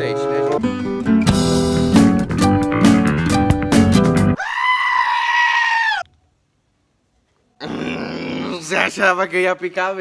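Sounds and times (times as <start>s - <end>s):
sheep bleating loudly: 4.4s - 6.1s.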